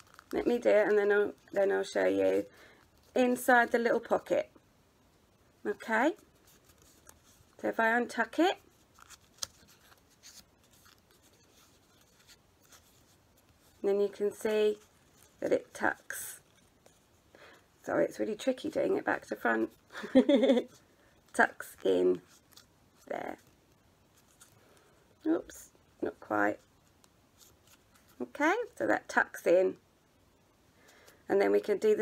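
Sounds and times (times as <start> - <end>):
paper crinkling and rustling: 0.0 - 1.6, 6.2 - 7.6, 8.5 - 13.8, 26.2 - 28.3
paper rustling and rubbing: 0.0 - 4.3, 5.8 - 17.3, 18.0 - 28.8.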